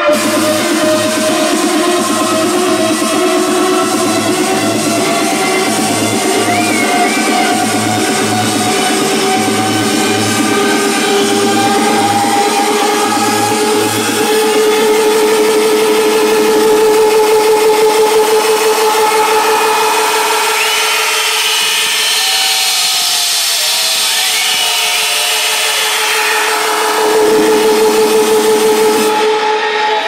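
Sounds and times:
electronic dance music: 0.0 - 30.0
pulsing synth note: 0.0 - 30.0.

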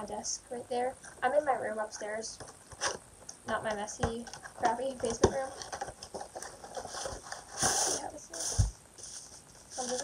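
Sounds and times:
plastic packaging crinkling: 5.4 - 10.0.

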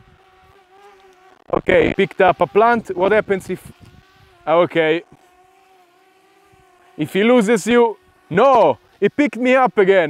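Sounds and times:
drone propellers humming: 0.0 - 10.0.

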